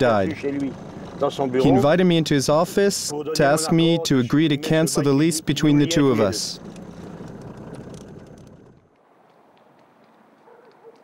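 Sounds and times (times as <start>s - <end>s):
car rumbling on the move: 0.0s - 9.0s.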